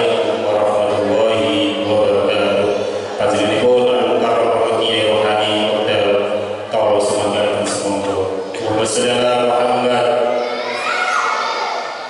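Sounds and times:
man chanting into a microphone: 0.0 - 10.4.

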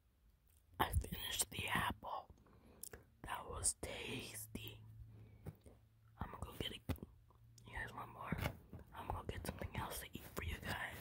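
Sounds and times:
person whispering: 0.8 - 2.3, 3.2 - 4.9, 6.2 - 11.0.

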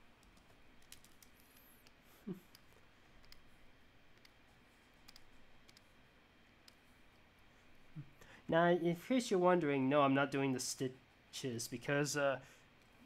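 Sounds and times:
mouse and keyboard clicks: 0.2 - 3.5, 4.1 - 4.4, 5.0 - 5.9
low hum-like vocal sound: 2.0 - 2.7, 7.8 - 9.1.

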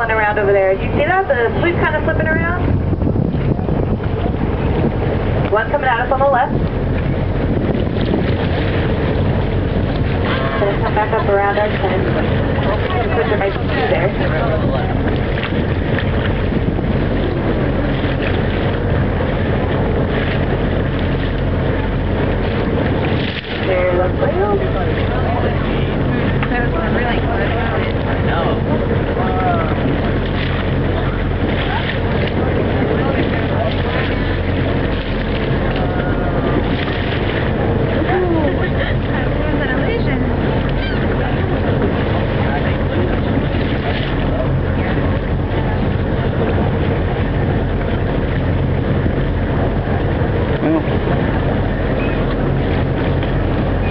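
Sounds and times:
boat engine droning: 0.0 - 53.9
wind buffeting microphone: 0.0 - 53.9.

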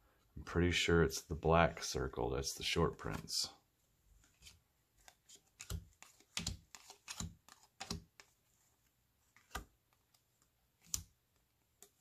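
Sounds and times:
cards tapping on a tabletop: 5.0 - 8.3, 9.4 - 9.7.

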